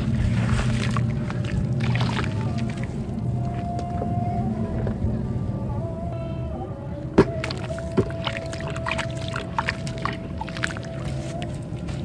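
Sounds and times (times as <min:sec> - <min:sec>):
water sloshing: 0:00.0 - 0:05.2, 0:07.1 - 0:12.0.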